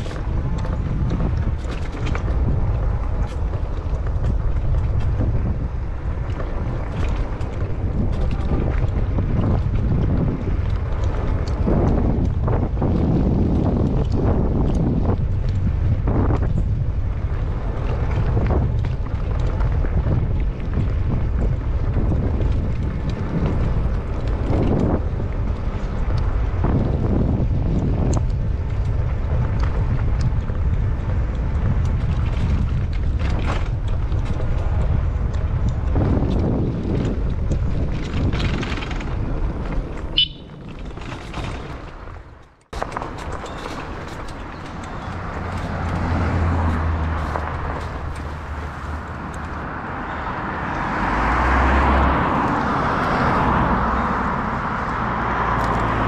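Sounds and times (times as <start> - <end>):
bike clicks and rattles: 0.0 - 50.8, 51.6 - 56.0
wind buffeting microphone: 0.0 - 56.0.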